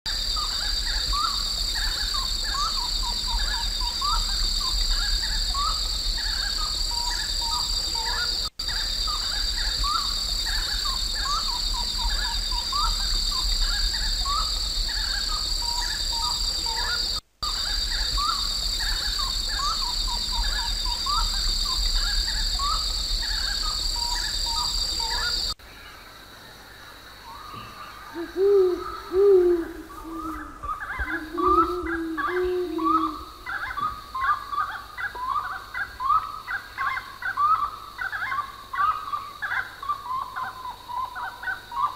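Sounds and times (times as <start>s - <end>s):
high-pitched insect drone: 0.1s - 25.6s, 28.2s - 33.8s.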